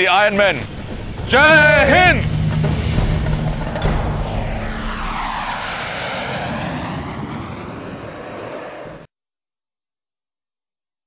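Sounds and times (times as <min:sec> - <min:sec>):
jet aircraft roaring past: 0:00.2 - 0:09.1.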